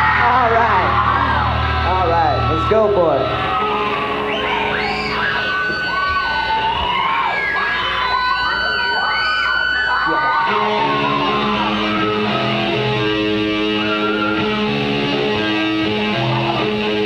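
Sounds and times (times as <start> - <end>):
electric guitars holding notes: 0.0 - 17.0
wailing guitar bends: 0.0 - 17.0
chugging guitar riff: 10.3 - 17.0.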